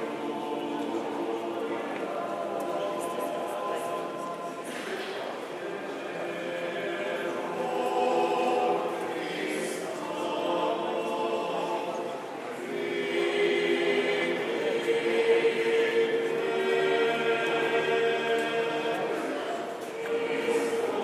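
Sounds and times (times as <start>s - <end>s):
group of voices chanting: 0.0s - 21.0s.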